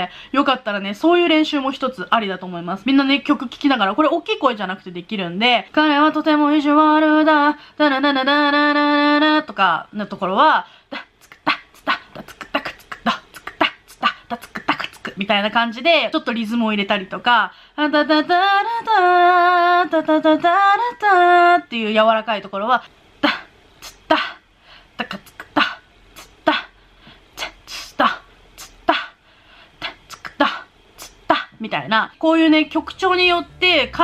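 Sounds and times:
woman beatboxing a rhythm: 0.0 - 24.4, 25.0 - 29.2, 29.8 - 34.0
woman beatboxing mouth percussion: 10.9 - 15.6, 23.2 - 24.4, 25.0 - 26.8, 27.4 - 29.2, 29.8 - 31.7.

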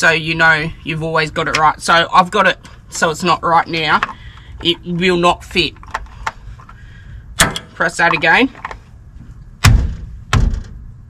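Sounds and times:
sharp coupling clunks: 7.4 - 8.8, 9.6 - 10.9.

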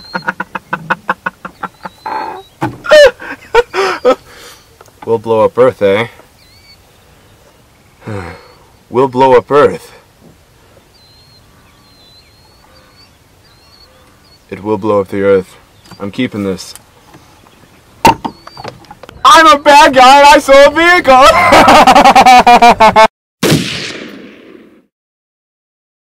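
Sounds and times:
birds calling: 0.0 - 23.0
explosion blast: 23.4 - 24.9.

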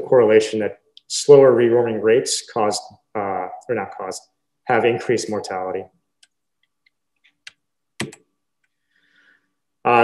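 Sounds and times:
computer keys clicking: 6.2 - 8.8.

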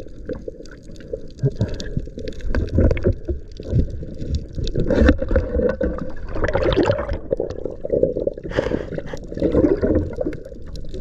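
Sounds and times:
underwater clicks and crackles: 0.0 - 11.0
underwater rumble: 0.0 - 11.0.

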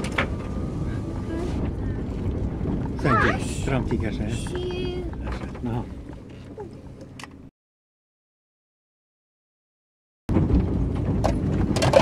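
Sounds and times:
vehicle engine rumble from inside: 0.0 - 7.5, 10.3 - 12.0.

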